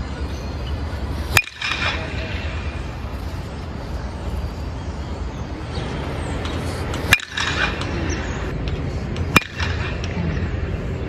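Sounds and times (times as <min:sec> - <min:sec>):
bat hitting baseball: 0:01.3 - 0:03.0, 0:06.9 - 0:08.4, 0:09.2 - 0:10.4.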